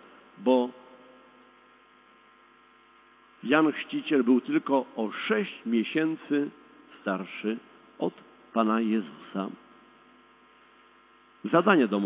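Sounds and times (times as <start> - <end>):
faint mains hum: 0.0 - 12.0.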